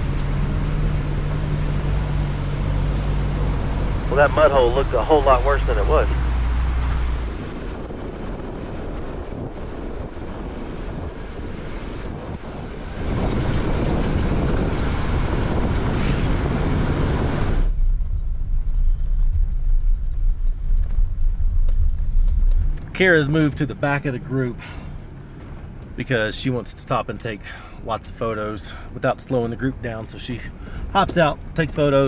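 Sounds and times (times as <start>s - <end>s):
engine and tyre rumble: 0.0s - 32.0s.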